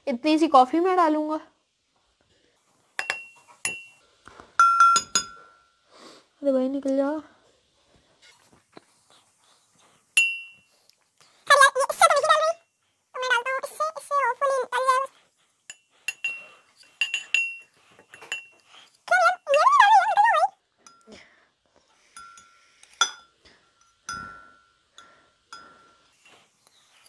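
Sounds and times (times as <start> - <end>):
spoon and whisk clinking on glass: 3.0 - 4.0, 4.6 - 5.6, 10.2 - 10.7, 15.7 - 19.7, 20.8 - 21.2, 22.1 - 26.4.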